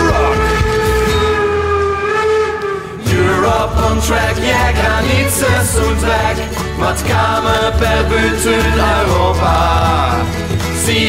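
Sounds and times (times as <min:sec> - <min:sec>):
singer holding long note: 0:00.0 - 0:06.5
band playing: 0:00.0 - 0:10.8.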